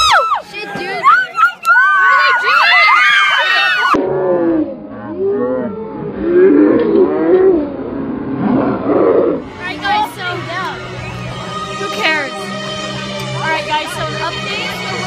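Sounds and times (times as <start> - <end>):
crowd yelling: 0.0 - 4.0
teenagers screaming and cheering: 0.0 - 4.0.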